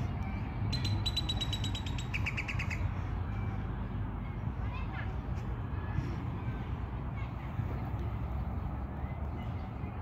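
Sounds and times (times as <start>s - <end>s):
songbird trilling: 0.7s - 2.9s.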